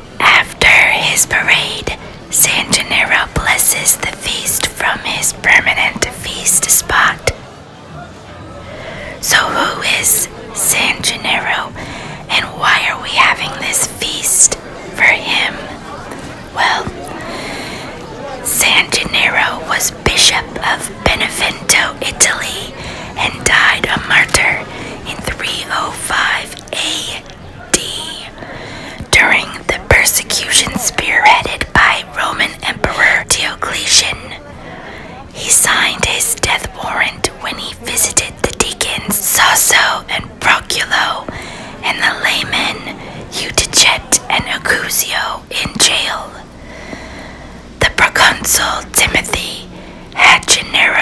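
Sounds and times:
man whispering: 0.2s - 7.4s, 9.1s - 46.6s.

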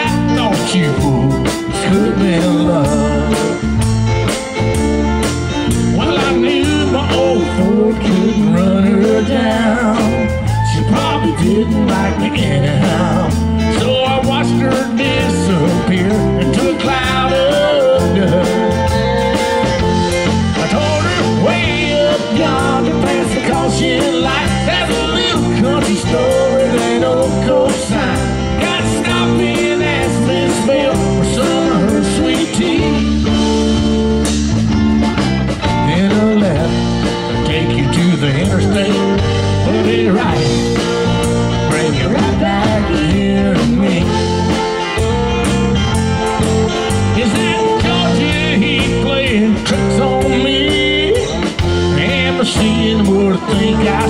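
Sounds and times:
bending high guitar lead line: 0.0s - 54.0s
country-rock band playing: 0.0s - 54.0s
fiddle lead with vibrato: 14.3s - 27.4s.

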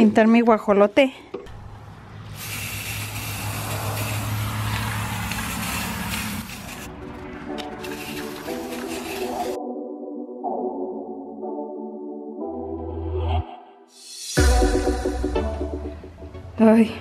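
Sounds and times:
spray paint can hissing: 2.3s - 6.9s, 7.6s - 9.6s
background music: 6.9s - 17.0s.

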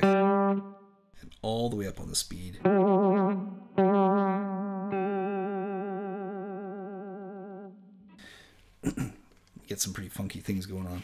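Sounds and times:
electric guitar note with vibrato: 0.0s - 0.9s.

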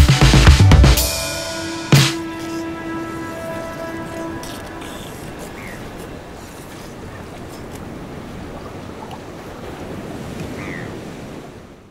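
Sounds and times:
ocean surf: 0.0s - 11.9s
wind: 0.9s - 11.9s.

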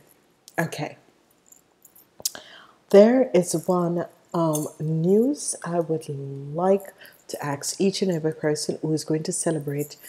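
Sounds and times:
woman speaking: 0.5s - 1.0s, 2.9s - 10.0s.

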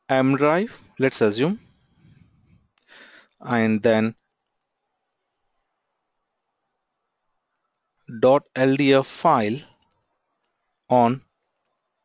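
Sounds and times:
computer keyboard keystrokes: 4.3s - 4.8s, 9.7s - 10.8s, 11.5s - 12.0s.

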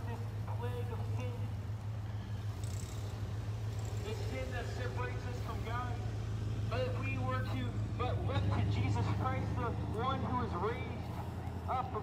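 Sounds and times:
street traffic drone: 0.0s - 12.0s.

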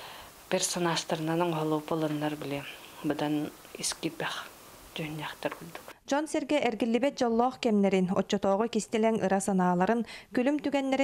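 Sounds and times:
woman speaking softly: 0.5s - 11.0s.

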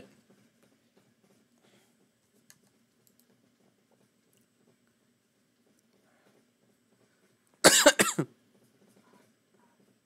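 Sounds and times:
person coughing: 7.6s - 8.3s.

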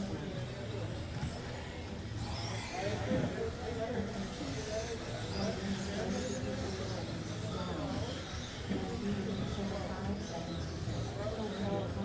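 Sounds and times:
electric toy cars whining: 0.0s - 12.0s
voices: 0.0s - 12.0s.

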